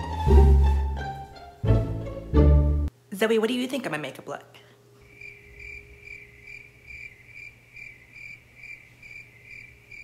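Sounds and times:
faint steady hum: 0:02.9 - 0:10.0
cricket chirping: 0:05.0 - 0:10.0.

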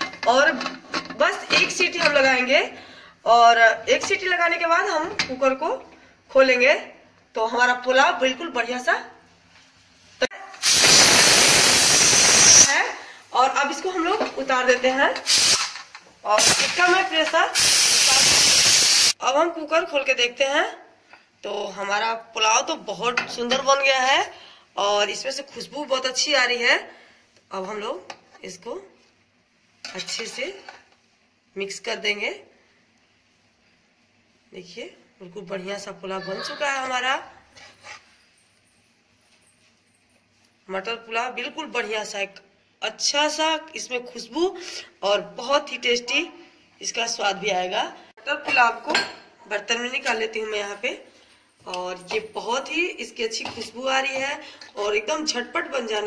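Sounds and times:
woman speaking: 0:00.0 - 0:09.2, 0:12.6 - 0:15.2, 0:16.2 - 0:18.4, 0:34.5 - 0:37.4, 0:40.7 - 0:56.0
pressure cooker steam whistle: 0:10.6 - 0:12.8, 0:17.6 - 0:19.2.

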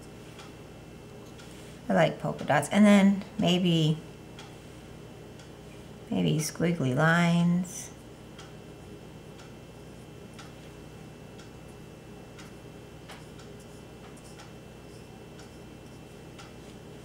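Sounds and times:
faint steady ticking: 0:00.3 - 0:01.8, 0:04.2 - 0:05.7, 0:07.9 - 0:17.0.

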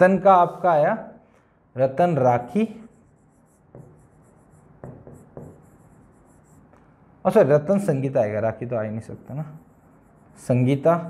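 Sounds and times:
chalk scratching on a board: 0:02.5 - 0:06.8, 0:09.0 - 0:11.0
chalk tapping on a board: 0:02.8 - 0:06.8.

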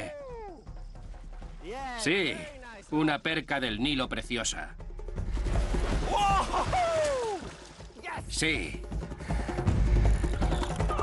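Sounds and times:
man shouting excitedly: 0:00.0 - 0:00.6, 0:08.0 - 0:08.4.

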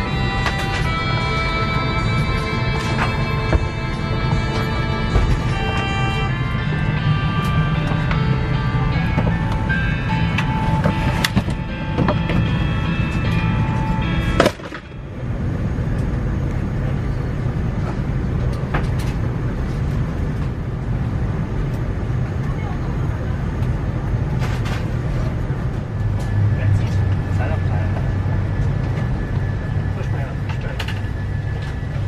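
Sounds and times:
held musical tones: 0:00.0 - 0:17.7
low hum of cabin air: 0:00.0 - 0:32.0.

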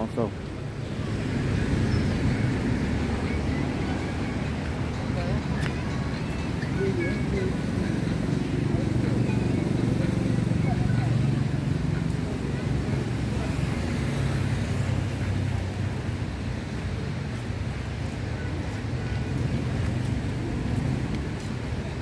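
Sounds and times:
faint voices of passersby: 0:00.0 - 0:22.0.

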